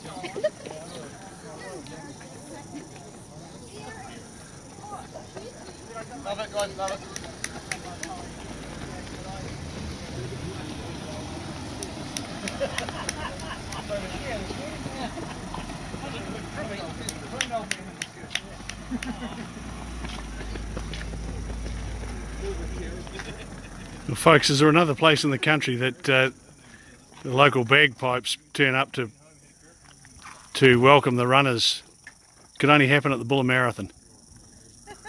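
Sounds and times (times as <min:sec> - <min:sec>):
distant voices talking: 0:00.0 - 0:32.0
passing vehicle engine hum: 0:04.2 - 0:25.4.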